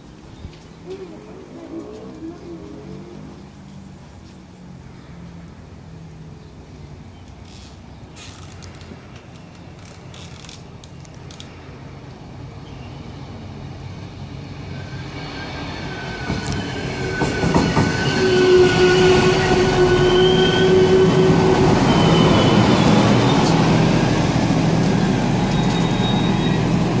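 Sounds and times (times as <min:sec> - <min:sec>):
diesel train engine: 0:00.0 - 0:27.0
train rolling noise: 0:07.3 - 0:27.0
high brake squeal: 0:14.6 - 0:23.7, 0:25.4 - 0:27.0.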